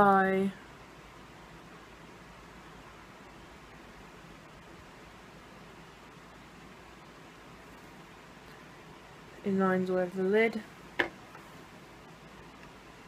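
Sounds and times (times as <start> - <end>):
recording noise hiss: 0.0 - 13.0.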